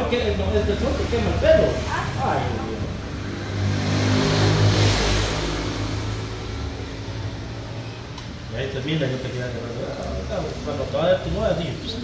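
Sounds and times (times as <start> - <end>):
vehicle driving past: 0.0 - 12.0.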